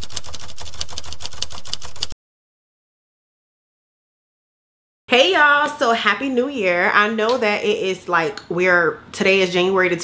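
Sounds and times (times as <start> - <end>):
typewriter key clacks: 0.0 - 2.1.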